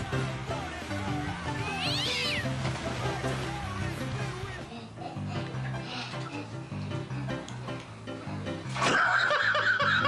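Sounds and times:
background music: 0:00.0 - 0:10.0
cat meowing: 0:01.6 - 0:02.5.

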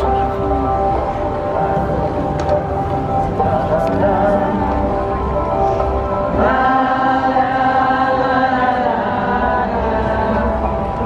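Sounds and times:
crowd singing a chant: 0:01.6 - 0:11.0.

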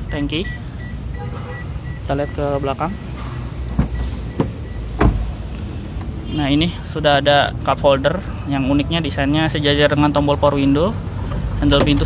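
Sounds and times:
handling knocks on car door: 0:03.7 - 0:05.2.

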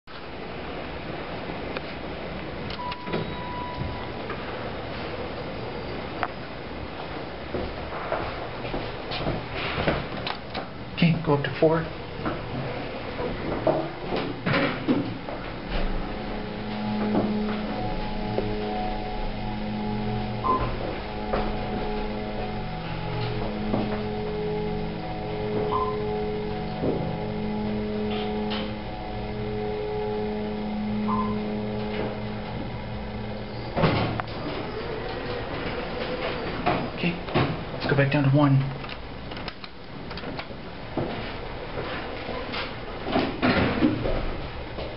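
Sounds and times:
elevator droning hum: 0:00.1 - 0:44.9
elevator doors clunking: 0:02.7 - 0:05.3, 0:11.9 - 0:44.9.

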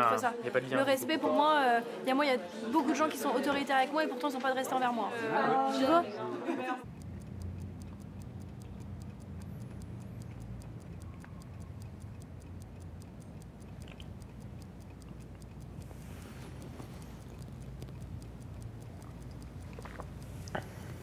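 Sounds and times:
clock ticking: 0:06.8 - 0:21.0
sip from a mug: 0:19.8 - 0:21.0.

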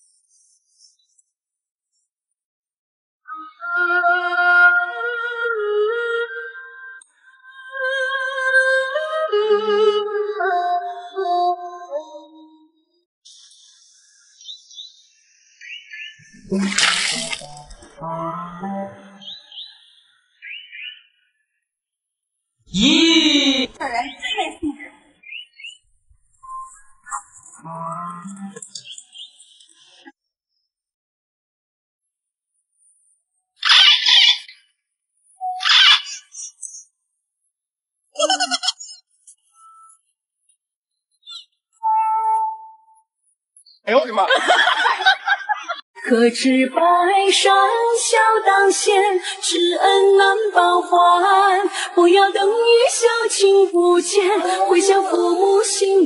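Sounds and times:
music: 0:03.3 - 0:12.8, 0:17.6 - 0:19.2, 0:27.6 - 0:28.6, 0:41.8 - 0:43.0
water splashing onto concrete: 0:16.5 - 0:18.0.

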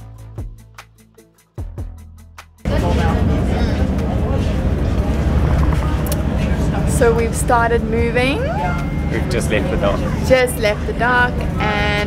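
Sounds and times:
faint voices: 0:02.7 - 0:12.0
ship engine rumbling: 0:02.7 - 0:12.0.

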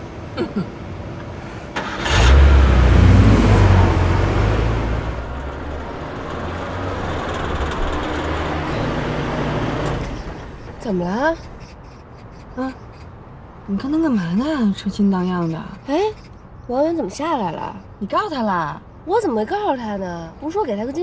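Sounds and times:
car engine revving and accelerating: 0:01.9 - 0:10.2.

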